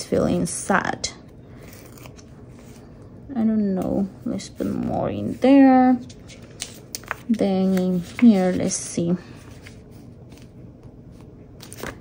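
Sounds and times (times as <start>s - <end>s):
low steady hum: 0.0s - 12.0s
paper rustle: 6.0s - 10.6s, 11.2s - 12.0s.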